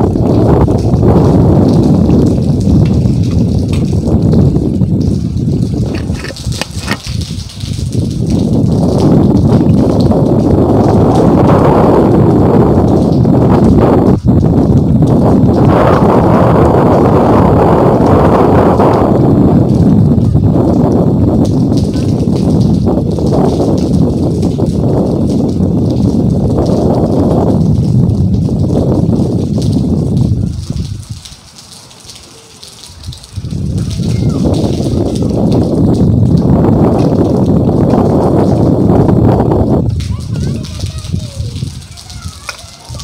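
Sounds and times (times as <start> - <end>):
strong wind buffeting microphone: 0.0 - 43.0.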